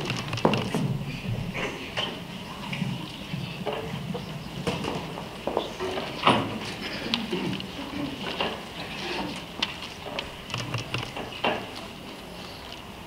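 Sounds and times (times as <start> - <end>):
faint murmuring voices: 0.7 - 12.9.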